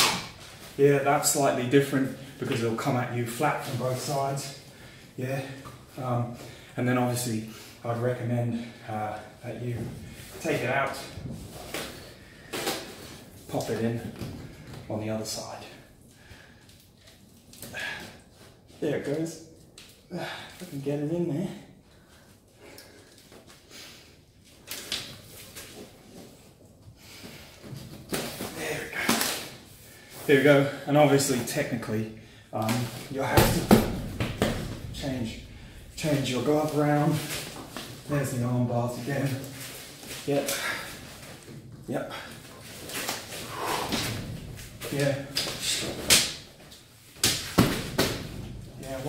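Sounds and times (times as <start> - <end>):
strikes against bamboo canes: 0.0 - 0.4, 45.4 - 46.4.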